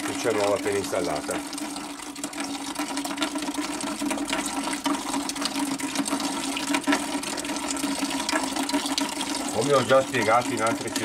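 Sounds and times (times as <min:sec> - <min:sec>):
water pouring into a bucket: 0:00.0 - 0:11.0.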